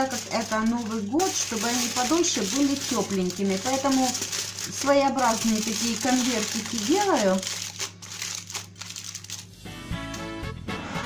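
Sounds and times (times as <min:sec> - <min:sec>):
aluminium foil crinkling: 0:00.0 - 0:09.5
background music: 0:09.5 - 0:11.0.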